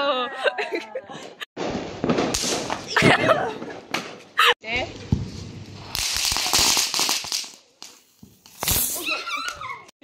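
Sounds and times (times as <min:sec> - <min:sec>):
firework crackling hiss: 0:05.1 - 0:09.4.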